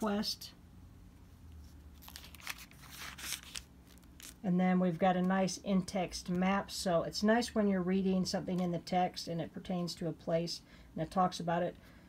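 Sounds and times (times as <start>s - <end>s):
thin paper pages turning: 1.6s - 4.4s.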